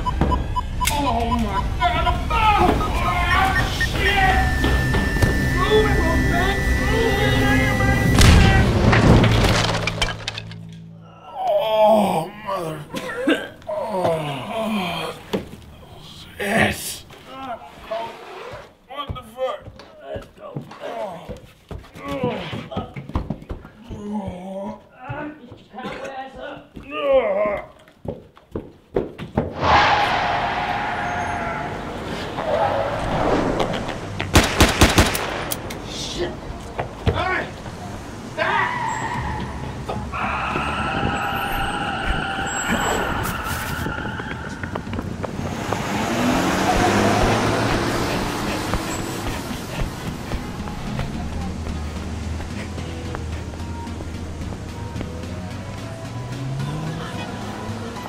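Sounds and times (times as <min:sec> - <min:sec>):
action film background music: 0:01.6 - 0:09.3
sharp impacts: 0:02.3 - 0:10.9, 0:29.5 - 0:35.7.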